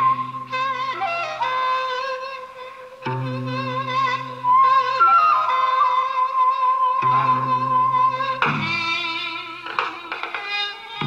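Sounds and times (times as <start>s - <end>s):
traditional instrument ensemble playing: 0.0s - 11.0s.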